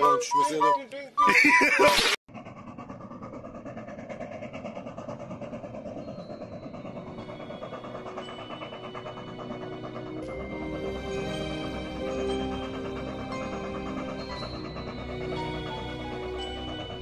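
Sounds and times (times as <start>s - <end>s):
steam locomotive chuffing: 2.3s - 17.0s
music: 7.0s - 17.0s.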